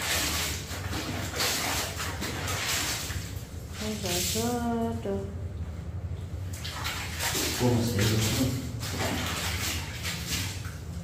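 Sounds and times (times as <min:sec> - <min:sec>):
clothes scrubbed in water: 0:00.0 - 0:04.9, 0:06.4 - 0:11.0
water sloshing and splashing: 0:00.0 - 0:11.0.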